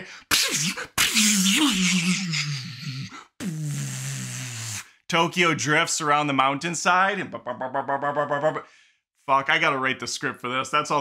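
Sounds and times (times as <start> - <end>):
man imitating engine hiss: 3.2 - 5.0.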